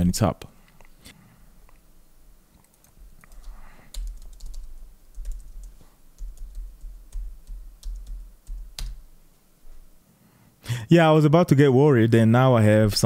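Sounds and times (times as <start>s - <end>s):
computer keyboard typing: 2.6s - 9.1s.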